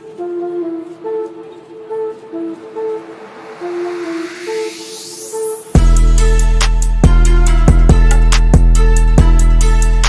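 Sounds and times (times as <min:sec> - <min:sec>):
background music melody: 0:00.0 - 0:10.0
rising sweep: 0:02.1 - 0:06.6.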